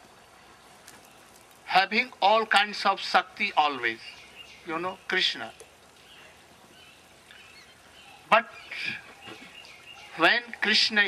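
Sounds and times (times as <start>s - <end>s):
low background noise: 0.0s - 11.0s
faint bird chirps: 3.8s - 11.0s.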